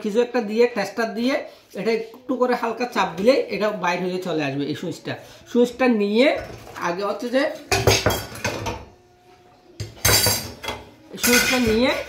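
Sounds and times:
metallic clatter of burner parts: 10.0 - 12.0.

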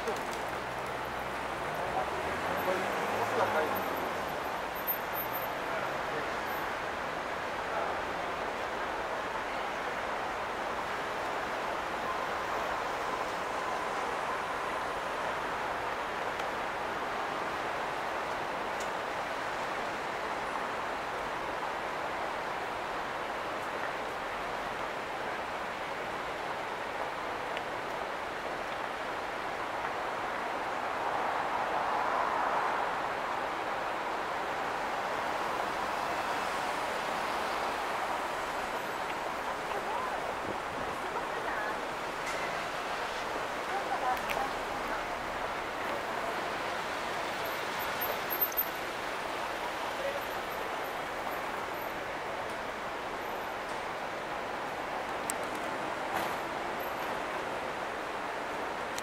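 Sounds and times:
city street traffic: 0.0 - 59.0
vehicle passing: 1.1 - 4.4.

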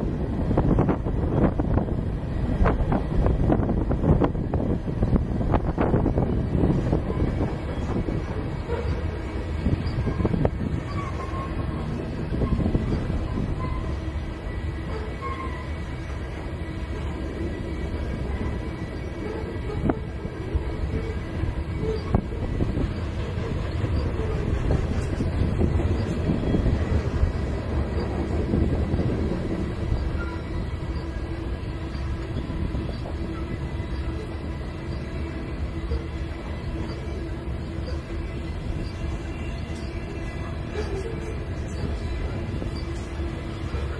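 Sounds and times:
train wheels rumbling on rails: 0.0 - 43.9
thin wheel squeal: 8.6 - 16.1, 20.6 - 27.0, 28.9 - 43.9.

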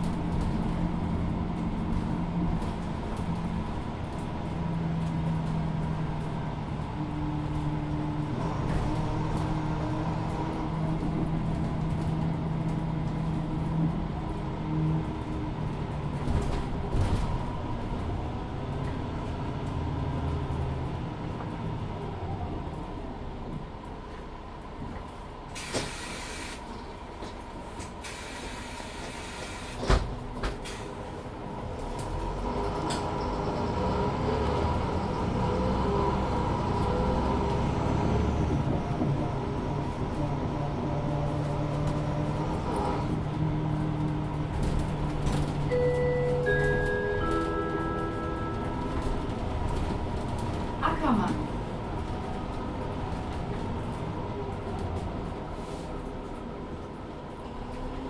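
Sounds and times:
bus diesel engine running: 0.0 - 58.0
compressed-air hiss: 25.6 - 26.6.

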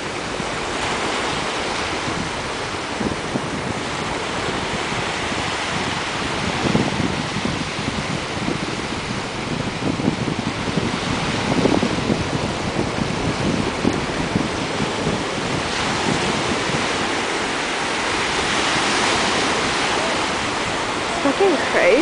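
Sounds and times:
sea surf breaking: 0.0 - 22.0
wind buffeting microphone: 0.0 - 22.0.

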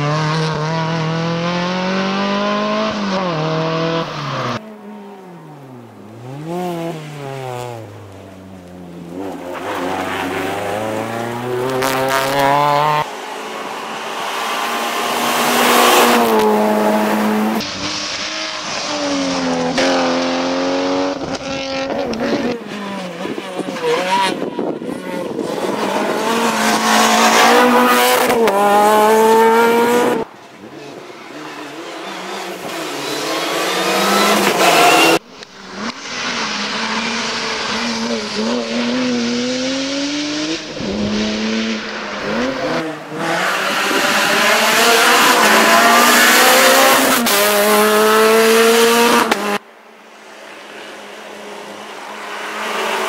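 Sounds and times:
rally car engines revving past: 0.0 - 49.6, 50.2 - 53.0.

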